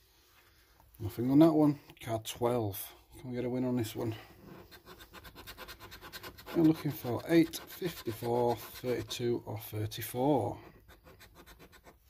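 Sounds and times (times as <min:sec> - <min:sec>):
coin scratching a scratchcard: 0:04.5 - 0:09.2, 0:10.8 - 0:12.0.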